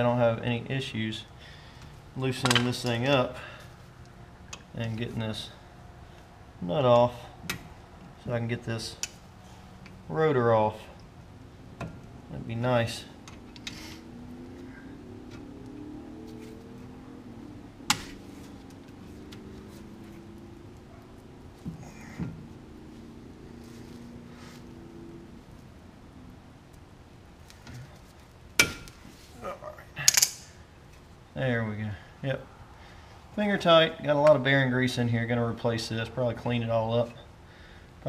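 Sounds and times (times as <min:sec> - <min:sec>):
metallic clicks of pliers: 0:30.0 - 0:30.5.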